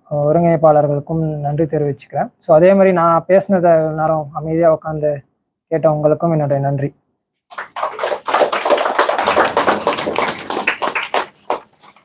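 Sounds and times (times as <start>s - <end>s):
audience applauding: 7.5s - 12.0s.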